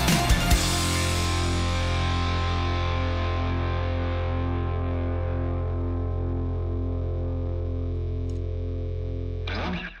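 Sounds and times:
distorted guitar chord: 0.0 - 10.0.

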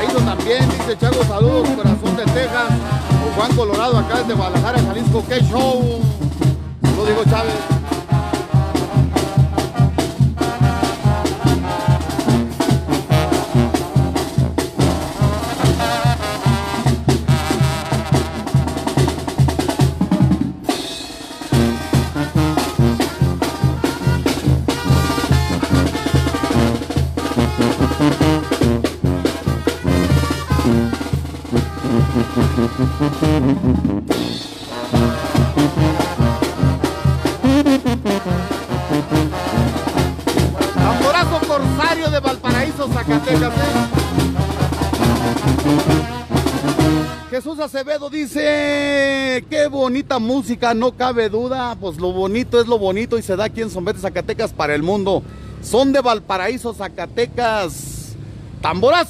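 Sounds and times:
bass drum and snare beat: 0.0 - 47.3
brass band playing: 0.0 - 47.8.

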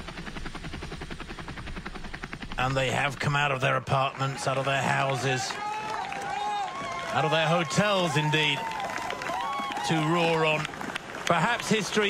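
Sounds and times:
helicopter rotor chopping: 0.0 - 12.0.

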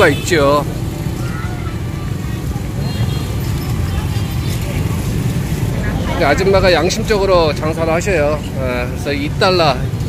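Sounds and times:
motorbikes: 0.0 - 10.0
road traffic rumble: 0.0 - 10.0.

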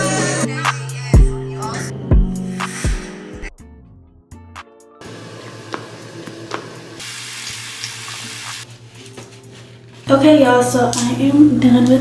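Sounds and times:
tap water running over hands: 5.7 - 8.6.

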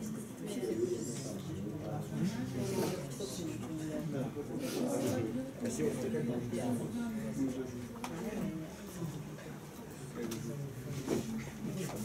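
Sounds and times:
indistinct voices talking quietly: 0.0 - 12.0.

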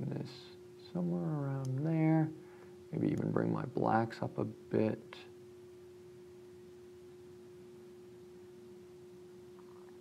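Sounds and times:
faint single-pitched hum: 0.0 - 10.0.

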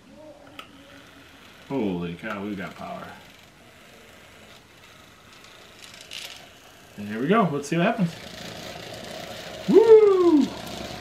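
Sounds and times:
small motor running faintly: 0.2 - 11.0.

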